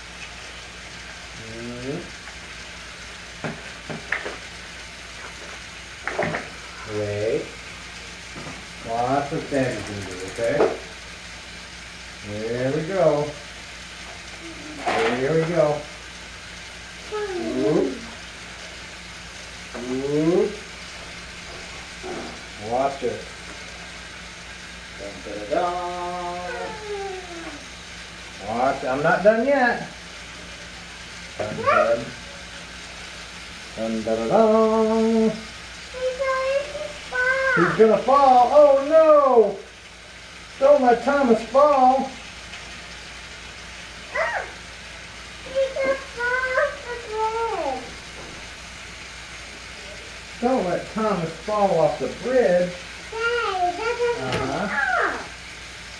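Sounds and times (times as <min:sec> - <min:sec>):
toy trains whirring on track: 0:00.0 - 0:55.9.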